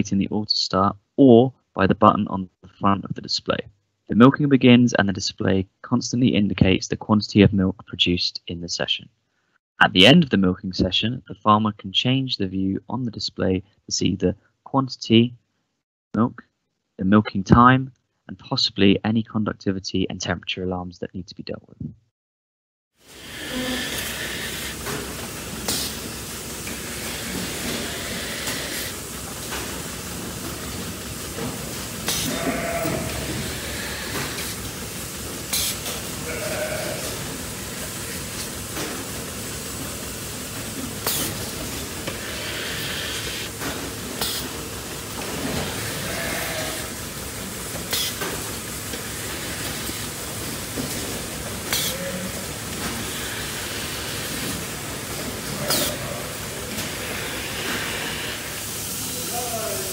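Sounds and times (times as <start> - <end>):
milking machine hissing: 23.0 - 59.9
animal bleats: 23.3 - 24.5, 32.1 - 34.6, 35.5 - 37.3, 45.5 - 47.0, 47.9 - 48.2, 51.7 - 52.5, 55.5 - 58.5.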